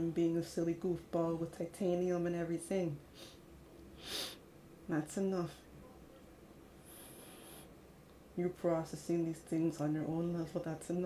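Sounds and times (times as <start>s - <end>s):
faint short hiss: 4.0s - 4.4s.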